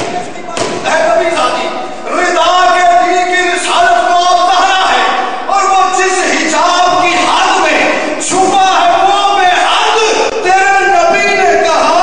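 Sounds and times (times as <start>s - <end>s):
man shouting through loudspeakers: 0.0s - 12.0s.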